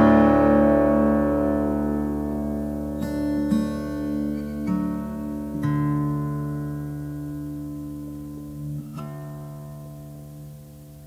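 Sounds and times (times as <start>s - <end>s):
acoustic guitar plucked notes: 0.0s - 11.0s.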